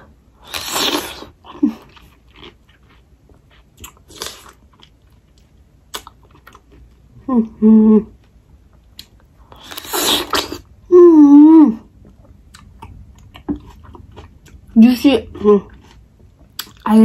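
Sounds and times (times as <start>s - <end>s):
woman humming mmm: 7.2s - 8.2s
soft chewing clicks: 8.2s - 9.8s, 12.0s - 14.8s, 15.7s - 16.9s.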